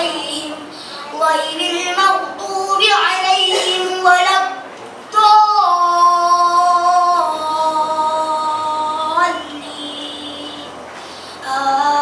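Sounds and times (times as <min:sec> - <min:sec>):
boy chanting into a microphone: 0:00.0 - 0:10.8
short breath: 0:11.0 - 0:11.4.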